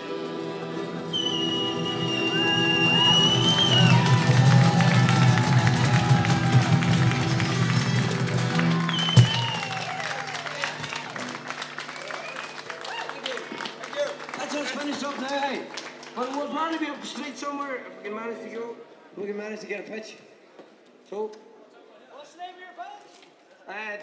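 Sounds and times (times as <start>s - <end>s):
street band with guitars and voices: 0.0s - 9.8s
high whistle: 1.1s - 5.3s, 8.7s - 10.3s
people clapping: 1.1s - 17.8s.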